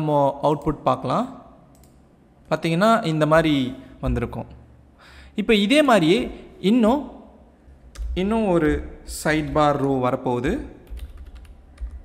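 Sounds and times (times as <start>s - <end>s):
computer keyboard typing: 10.8s - 12.0s.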